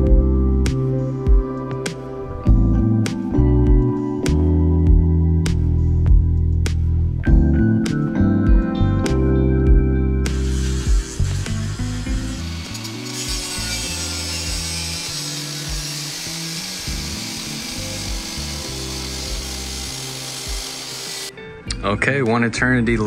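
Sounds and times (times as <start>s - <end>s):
background music: 0.0s - 23.0s
grinder cutting through steel: 10.3s - 21.3s.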